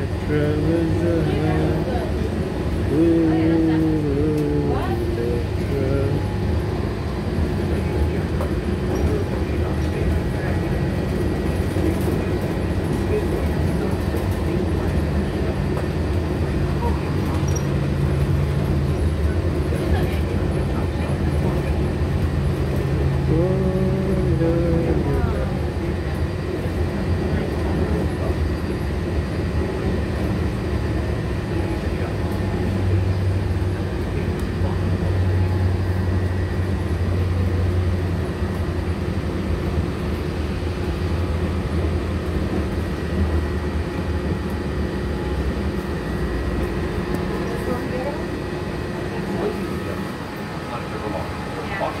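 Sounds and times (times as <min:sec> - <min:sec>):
low rumble of train: 0:00.0 - 0:52.0
monorail electric hum: 0:00.0 - 0:52.0.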